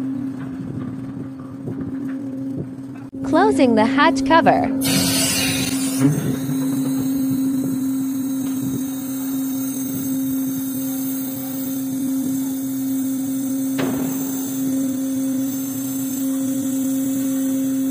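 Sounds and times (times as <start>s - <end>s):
hatch cover machinery humming: 0.0s - 17.9s
sharp metallic knock: 13.8s - 14.4s.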